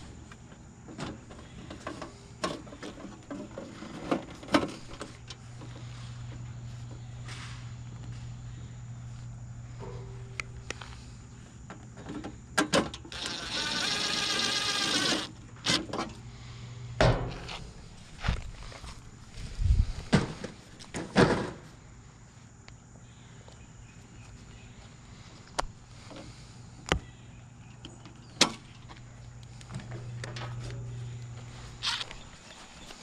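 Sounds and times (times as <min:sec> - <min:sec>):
impact driver whining and rattling: 0:13.0 - 0:16.1.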